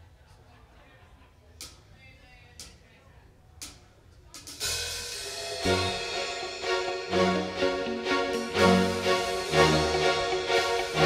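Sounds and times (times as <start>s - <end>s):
rock band playing: 5.1s - 11.0s.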